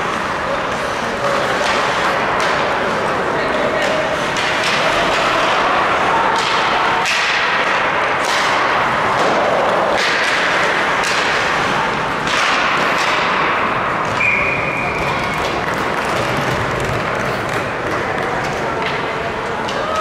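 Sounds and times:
skates scraping on ice: 0:00.0 - 0:20.0
sticks and puck knocking: 0:03.7 - 0:14.3
referee's whistle: 0:14.2 - 0:15.0.

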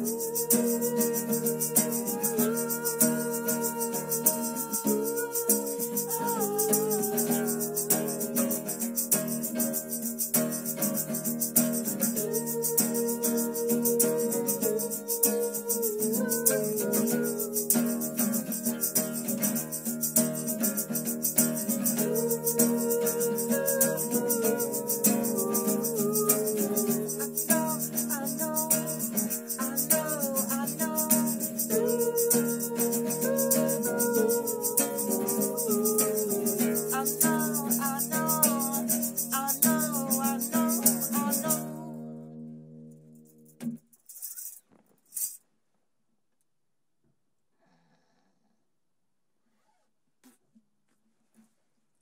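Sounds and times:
shaker rattling: 0:00.0 - 0:41.8, 0:43.3 - 0:45.4
tambourine jingling: 0:00.0 - 0:42.0, 0:42.8 - 0:45.4
acoustic guitar strumming: 0:00.0 - 0:43.8.

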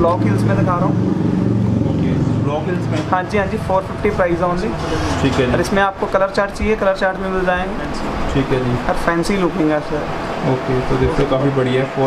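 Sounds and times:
low motor hum: 0:00.0 - 0:12.0
person speaking: 0:02.6 - 0:12.0.

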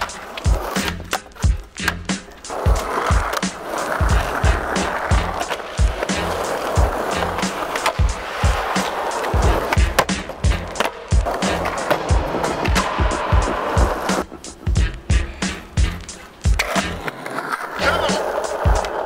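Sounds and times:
music with steady drum beat: 0:00.0 - 0:17.0, 0:17.8 - 0:19.0
skateboard knocking and scraping: 0:00.0 - 0:19.0
skateboard wheels rolling on concrete: 0:00.0 - 0:19.0.

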